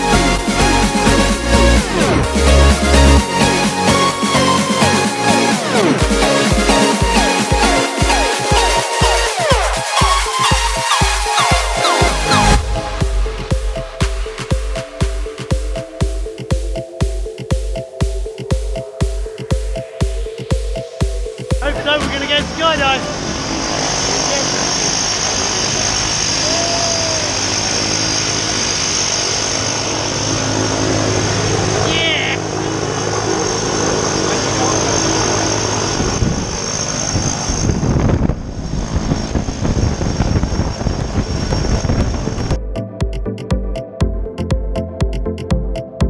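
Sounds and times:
electronic music with a beat: 0.0s - 23.3s, 42.6s - 46.0s
aircraft engine roaring: 19.8s - 42.8s
wind rumbling on microphone: 35.4s - 42.7s.

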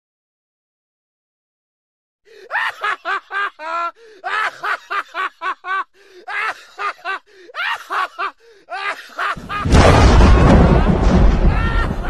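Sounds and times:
man laughing hard: 2.3s - 12.0s.

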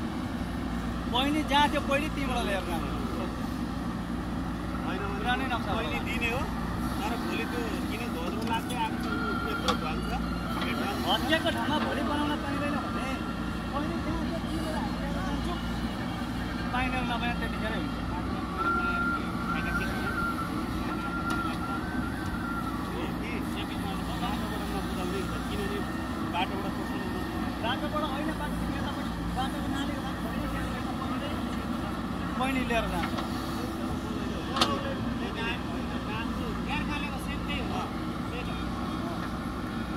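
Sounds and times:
diesel engine running: 0.0s - 39.9s.

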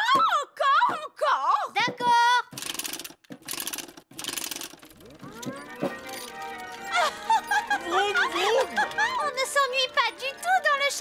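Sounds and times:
music: 5.1s - 11.0s.

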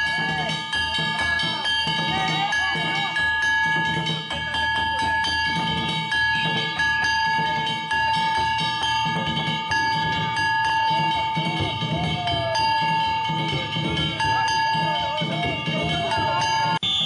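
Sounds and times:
deep drum beats: 0.0s - 17.0s
hand gongs struck rhythmically: 0.0s - 17.0s.

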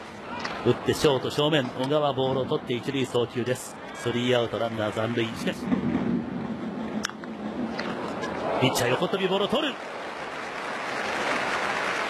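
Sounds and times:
man talking: 0.7s - 5.6s, 8.6s - 9.8s.

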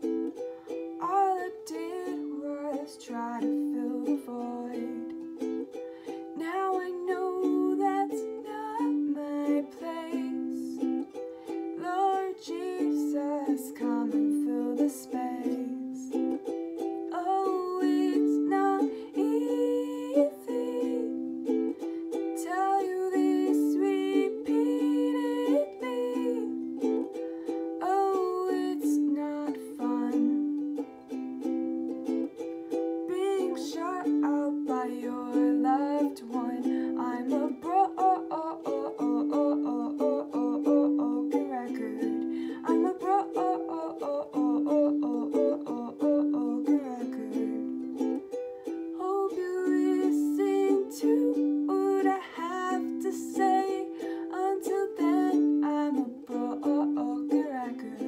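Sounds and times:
ukulele chords: 0.0s - 58.0s
woman singing: 0.0s - 58.0s.

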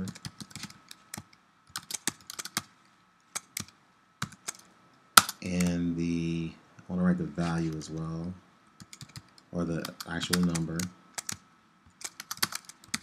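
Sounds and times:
typing on computer keyboard: 0.0s - 2.7s, 3.4s - 5.8s, 8.8s - 13.0s.

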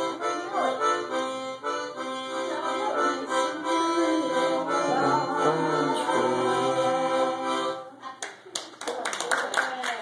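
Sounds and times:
harmonica playing: 0.0s - 8.0s
audience clapping: 8.2s - 10.0s.

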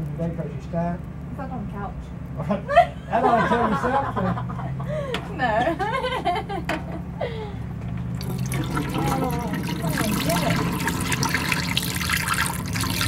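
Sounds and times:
water pouring into steel sink: 8.1s - 13.0s.

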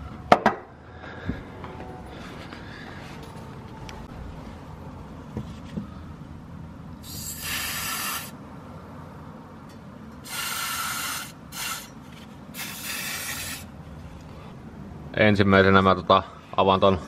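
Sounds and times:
aerosol spray can hissing: 7.0s - 8.3s, 10.3s - 11.9s, 12.6s - 13.7s.

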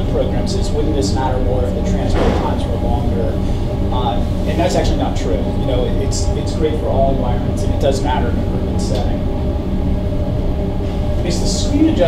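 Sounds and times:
faint even hum: 0.0s - 12.0s.

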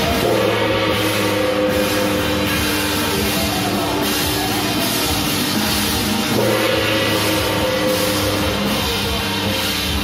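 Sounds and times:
loud music with sustained notes: 0.0s - 10.0s.

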